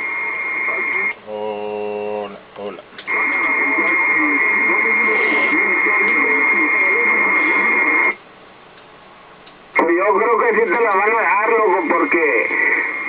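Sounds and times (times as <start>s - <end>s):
faint receiver hiss: 2.5s - 13.0s
radio click: 2.9s - 8.2s
unintelligible radio voice: 3.1s - 8.2s, 9.8s - 13.0s.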